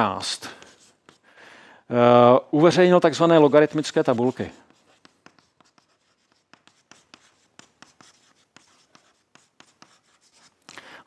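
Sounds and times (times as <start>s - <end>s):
chalk writing on blackboard: 0.0s - 1.3s, 2.8s - 10.7s.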